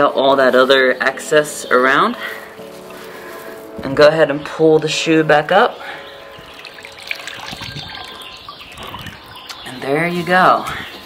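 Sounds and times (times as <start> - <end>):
small water splashes: 6.4 - 9.5
water dripping off a shoe: 6.4 - 9.6.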